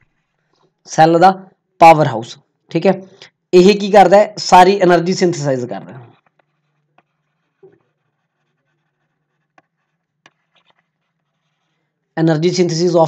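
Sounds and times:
stylus tapping on tablet screen: 6.1s - 11.6s.

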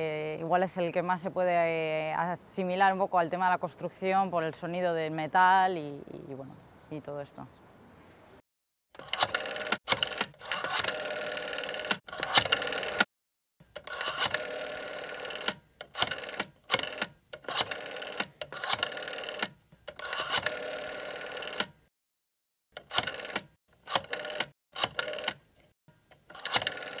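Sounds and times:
telephone bell ringing: 10.6s - 11.9s, 20.0s - 21.6s.

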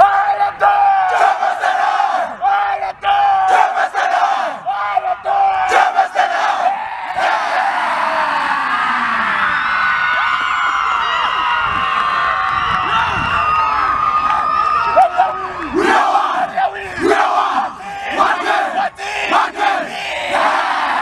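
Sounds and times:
team chanting war cry: 0.0s - 9.1s, 15.6s - 21.0s
crowd shouting and whooping: 0.0s - 21.0s.

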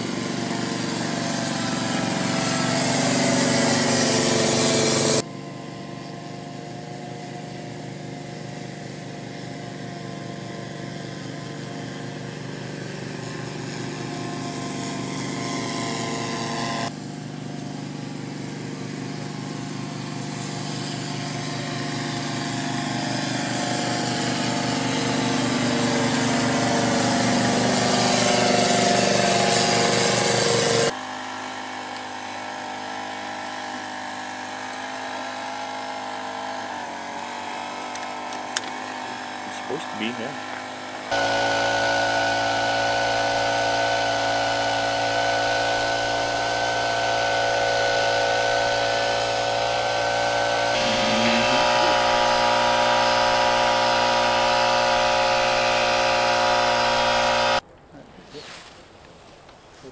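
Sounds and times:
small engine running: 0.0s - 57.6s.

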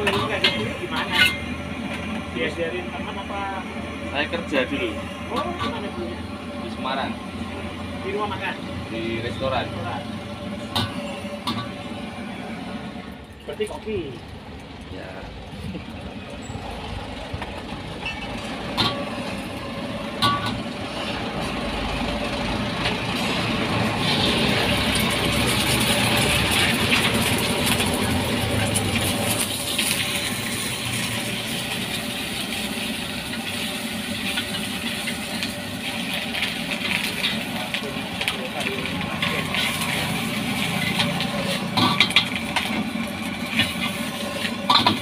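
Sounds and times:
stove burner rumble: 0.0s - 45.0s
egg sizzling in hot oil: 18.4s - 45.0s.

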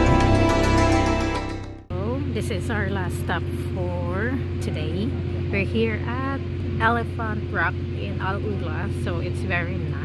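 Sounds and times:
low mechanical hum: 1.9s - 10.0s
people talking: 1.9s - 10.0s.

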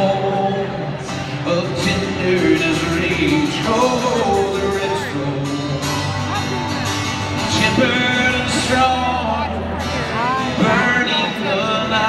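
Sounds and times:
man singing lead: 0.0s - 6.5s, 7.2s - 12.0s
live country band: 0.0s - 12.0s.

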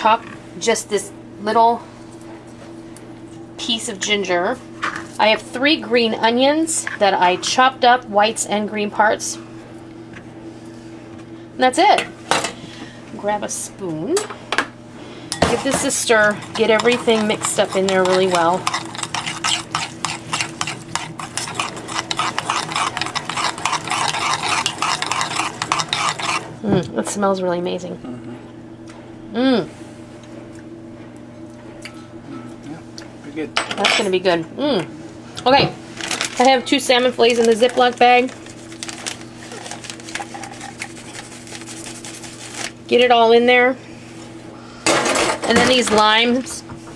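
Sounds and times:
low steady hum: 0.0s - 46.9s
spoon stirring liquid in bowl: 15.3s - 26.5s, 39.5s - 42.1s.

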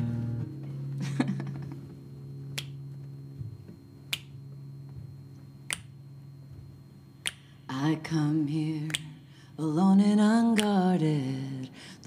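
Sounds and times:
guitar ringing: 0.0s - 8.9s
finger snaps: 2.5s - 2.8s, 4.1s - 4.4s, 5.7s - 6.0s, 7.2s - 7.7s, 8.8s - 9.3s, 10.5s - 10.9s
woman singing: 7.7s - 12.0s.

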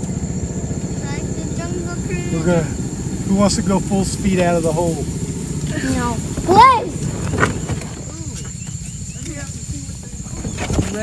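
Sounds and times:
outboard motor idling: 0.0s - 11.0s
faint voices: 0.7s - 11.0s.

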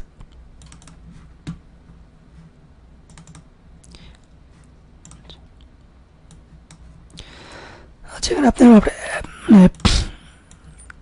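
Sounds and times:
low steady hum: 0.0s - 11.0s
computer keyboard and mouse clicks: 0.2s - 1.6s, 3.1s - 4.3s, 5.0s - 6.9s.

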